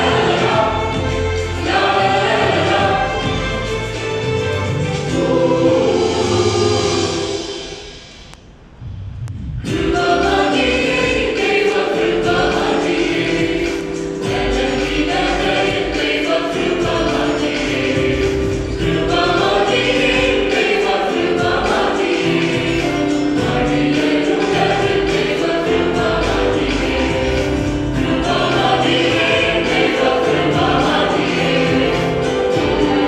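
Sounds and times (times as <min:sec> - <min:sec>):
mixed choir singing a hymn: 0:00.0 - 0:08.3, 0:09.6 - 0:33.0
steady beat: 0:00.0 - 0:33.0.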